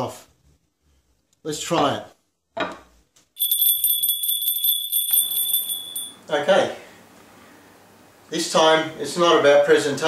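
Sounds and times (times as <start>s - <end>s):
small bells jangling: 3.4s - 6.2s.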